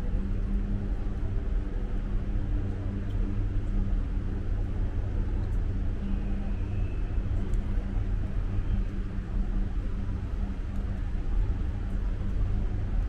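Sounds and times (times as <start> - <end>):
faint high whine: 0.0 - 13.0.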